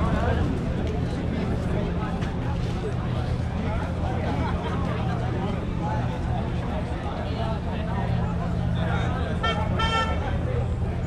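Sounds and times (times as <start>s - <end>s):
vehicle horn beeps: 9.4s - 10.3s.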